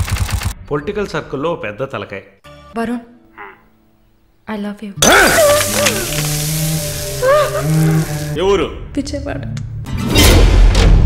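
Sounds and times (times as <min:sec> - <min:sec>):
loud noise hiss: 0:05.3 - 0:08.4.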